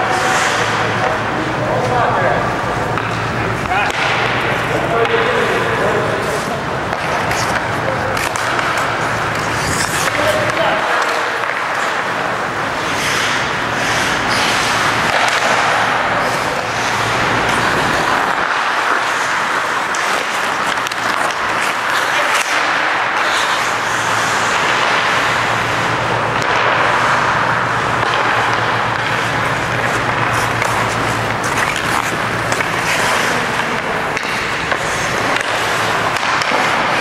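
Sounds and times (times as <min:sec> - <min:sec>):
hockey sticks and puck clacking: 0:00.0 - 0:37.0
skates scraping ice: 0:00.0 - 0:37.0.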